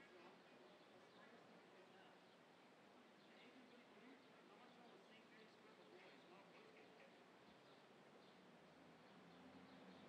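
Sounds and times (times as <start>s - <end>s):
distant murmur of voices: 0.0s - 8.1s.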